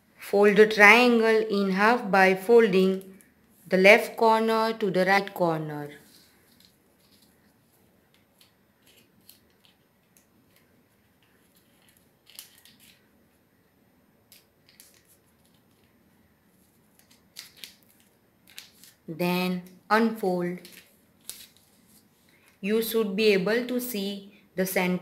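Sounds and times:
paper crinkling and rustling: 6.0s - 13.1s, 14.3s - 19.1s, 20.5s - 22.6s.

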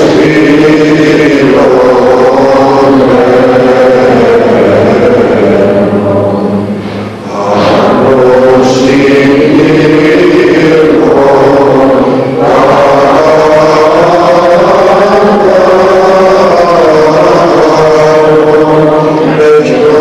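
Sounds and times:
church chant: 0.0s - 20.0s.

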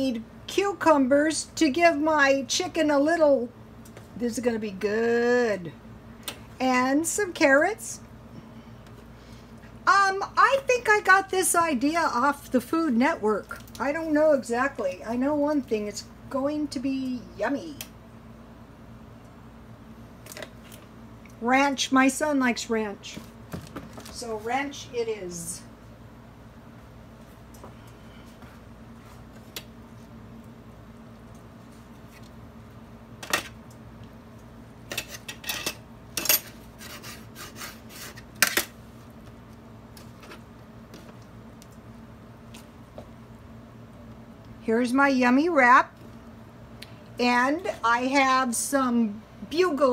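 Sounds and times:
low steady hum: 0.0s - 49.9s
knife scraping metal pan: 34.9s - 38.3s
knife sawing through tortilla: 36.8s - 38.2s.

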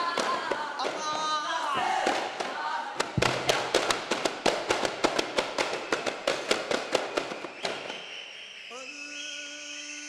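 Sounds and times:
frame drums struck by hand: 3.1s - 4.6s.

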